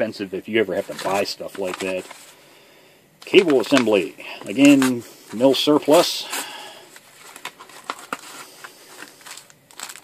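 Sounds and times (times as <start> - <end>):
paper and plastic crinkling: 0.7 - 2.4, 3.2 - 10.0.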